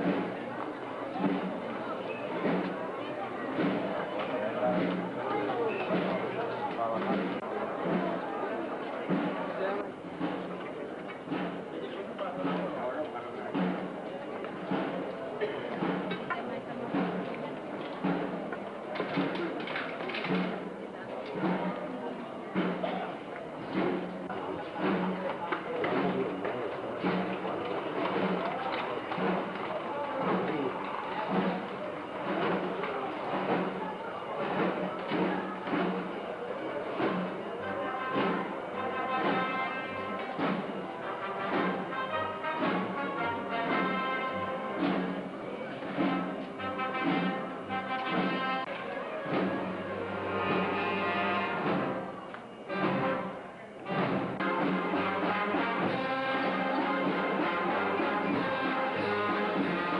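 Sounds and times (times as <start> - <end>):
band melody instruments: 0.0 - 59.9
crowd voices: 0.0 - 59.9
steady march drum beat: 0.0 - 59.9.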